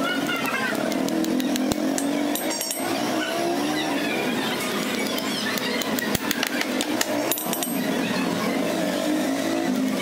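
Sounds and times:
vehicle engine humming: 0.0 - 10.0.

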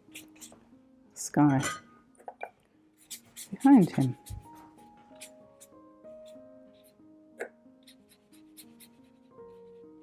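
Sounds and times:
slow background music: 0.0 - 10.0
brush strokes on paper: 3.0 - 7.0.

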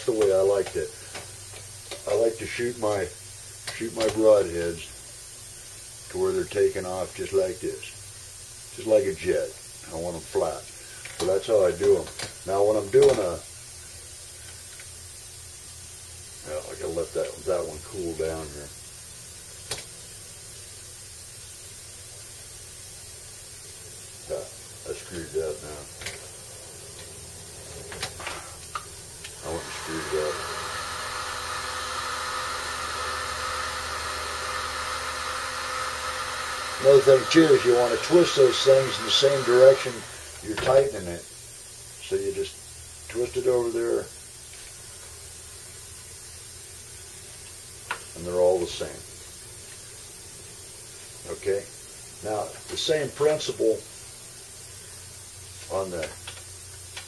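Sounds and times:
heat gun blowing hiss: 0.0 - 57.0
fan motor hum: 23.1 - 41.0
heat gun blowing air: 28.4 - 41.7.

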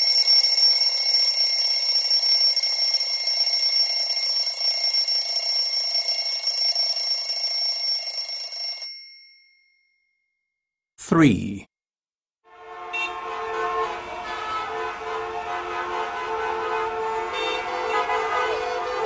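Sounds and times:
bell alarm ringing: 0.0 - 9.8.

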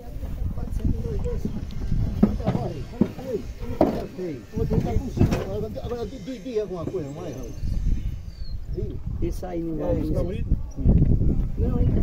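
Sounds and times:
men talking over one another: 0.0 - 7.7, 8.7 - 12.0
sharp knocks: 2.1 - 4.1.

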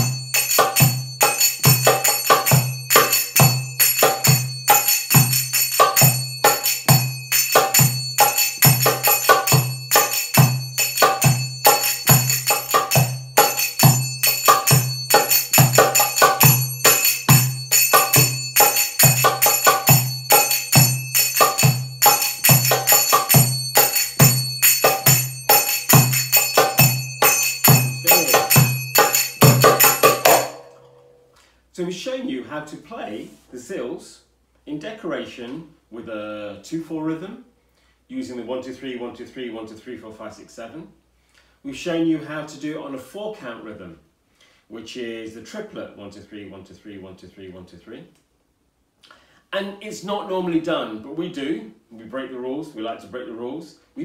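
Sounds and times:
finger cymbals ringing: 0.0 - 31.4.

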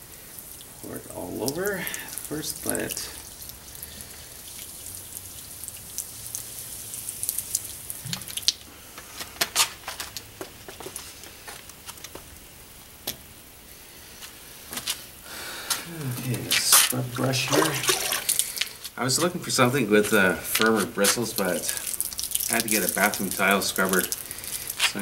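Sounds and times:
liquid dripping: 0.0 - 8.7, 16.0 - 25.0
cola pouring onto concrete: 0.0 - 12.4, 14.3 - 25.0.

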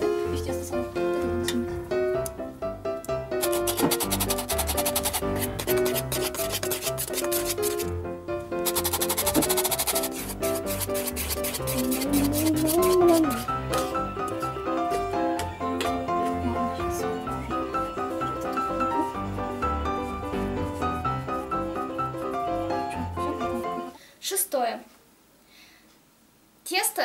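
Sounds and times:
light background music: 0.0 - 24.0
metal flour sifter rasping: 3.4 - 7.9, 8.6 - 14.0.

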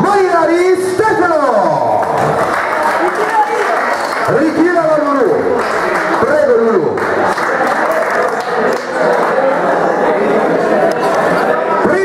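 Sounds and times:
audience applause: 1.9 - 11.2.

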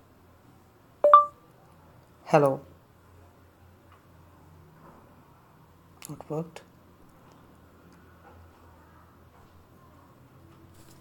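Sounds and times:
short electronic beep: 1.0 - 1.4.

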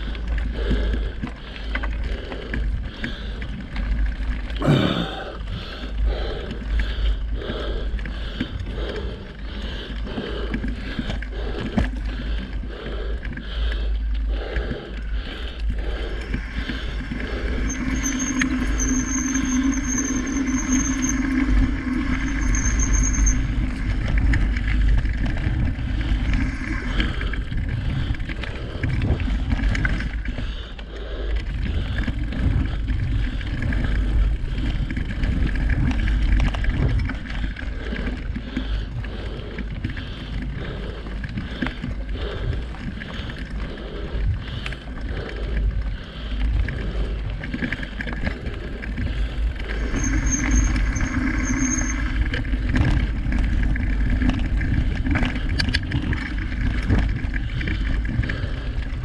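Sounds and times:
bike rattling: 0.0 - 59.0
wind rumble on microphone: 14.3 - 59.0
tyres rolling over dirt: 15.0 - 30.4, 46.7 - 58.8.

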